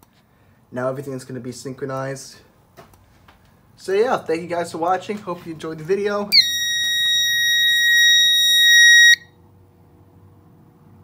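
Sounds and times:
fire alarm horn tone: 6.3s - 9.3s.

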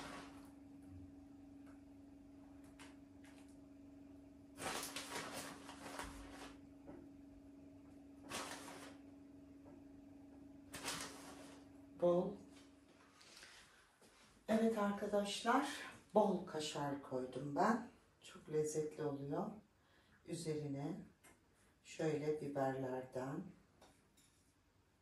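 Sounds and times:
plastic bag rustling: 0.0s - 0.5s, 4.6s - 6.6s, 8.3s - 9.0s, 10.7s - 11.6s.

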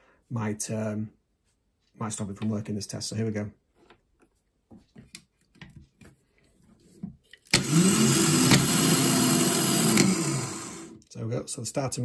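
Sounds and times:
starter motor whirring whine: 7.5s - 11.0s.

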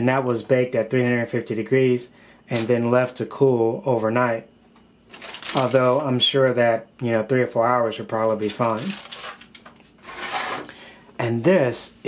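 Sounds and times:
parchment paper rustling: 5.1s - 6.1s, 8.1s - 10.7s
plastic slab rubbing on paper: 10.0s - 10.7s.

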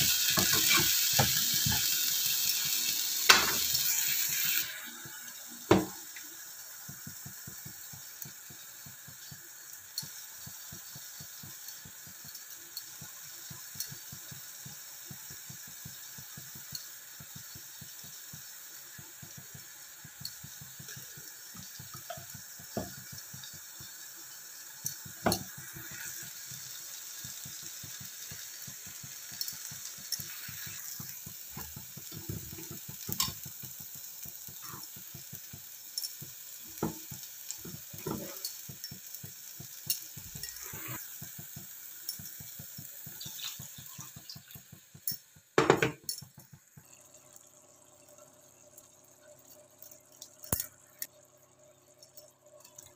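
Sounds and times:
spoon knocking and scraping pan: 0.0s - 2.2s, 3.3s - 4.4s, 5.0s - 6.2s, 19.2s - 24.0s, 24.6s - 26.3s, 27.5s - 33.5s, 34.5s - 46.9s
masala sizzling in oil: 0.0s - 52.9s.

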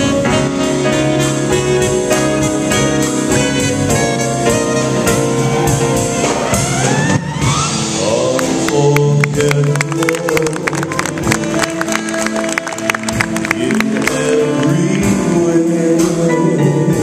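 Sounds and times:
jazz band playing a ballad: 0.0s - 17.0s.

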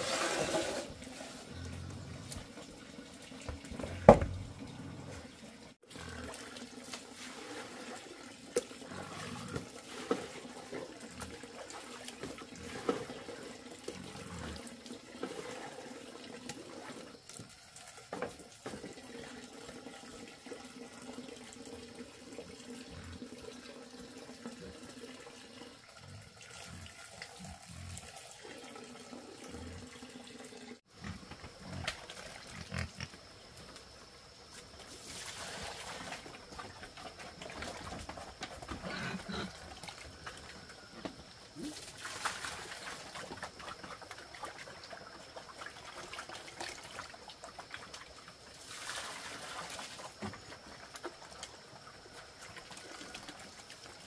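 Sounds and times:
knocks and splashes: 3.4s - 4.5s, 41.0s - 44.8s.

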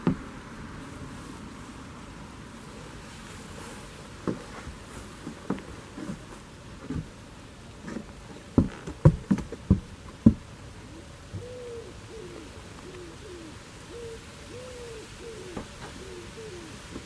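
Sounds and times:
pigeon cooing: 10.8s - 17.0s.

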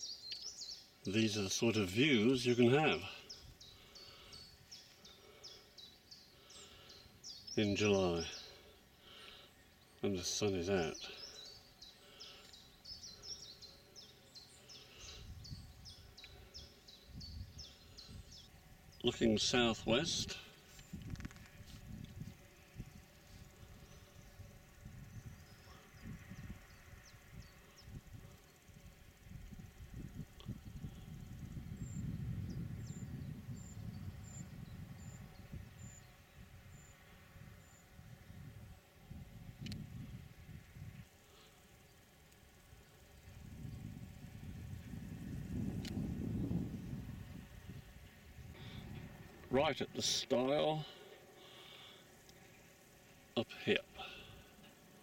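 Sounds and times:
faint high peeping: 0.0s - 38.1s
wind buffeting microphone: 15.2s - 16.2s, 17.0s - 18.4s, 20.0s - 23.9s, 24.5s - 41.1s, 43.2s - 49.5s.

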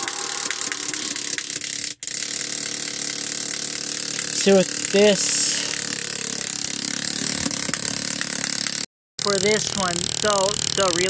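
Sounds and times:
small electric gear motor running: 0.0s - 11.0s.

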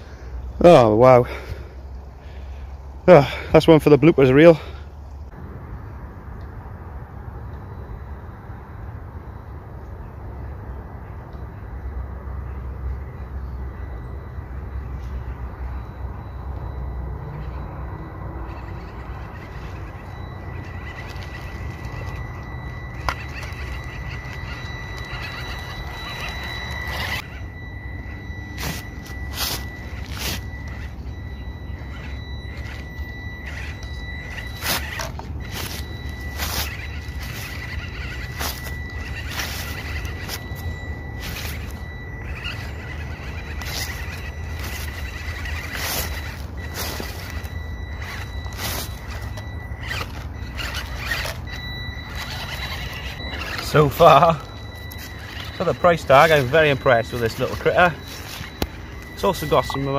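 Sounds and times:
small electric motor whining: 12.4s - 59.9s
tyres crackling over twigs: 17.0s - 59.9s.

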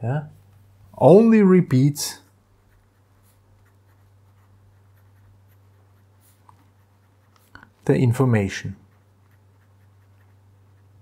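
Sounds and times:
low steady hum: 0.0s - 11.0s
pen scratching on paper: 2.6s - 7.6s, 8.8s - 11.0s.

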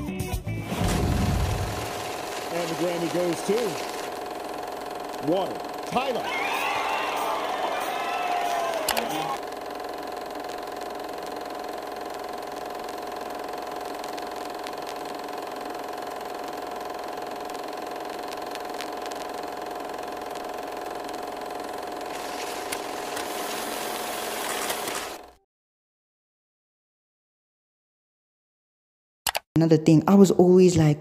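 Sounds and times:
mechanical whirring hum: 0.7s - 25.4s.

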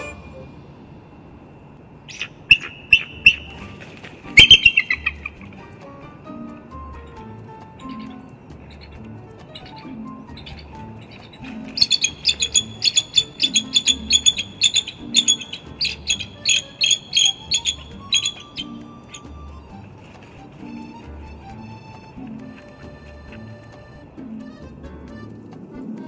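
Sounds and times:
background music with beat: 0.0s - 0.6s, 3.2s - 26.0s
eagles chittering calls: 2.0s - 26.0s.

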